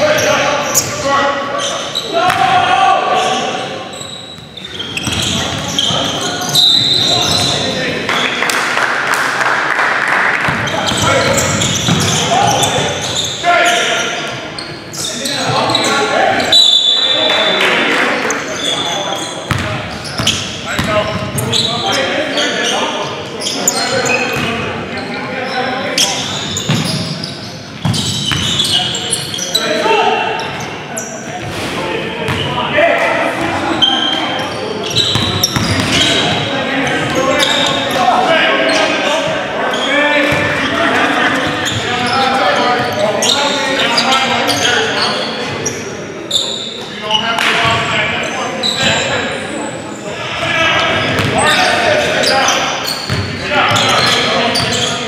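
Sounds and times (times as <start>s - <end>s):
players calling out: 0.0s - 55.0s.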